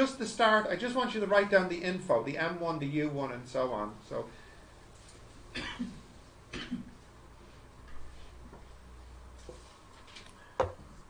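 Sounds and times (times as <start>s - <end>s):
man coughing: 5.5s - 6.9s.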